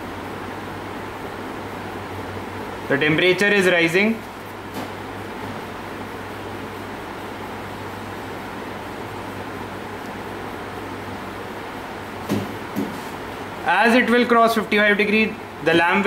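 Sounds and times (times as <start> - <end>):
low even hum: 0.0 - 16.0.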